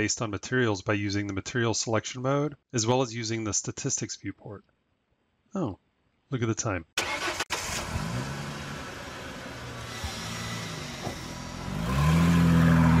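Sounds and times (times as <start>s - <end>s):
car engine revving: 7.0s - 13.0s.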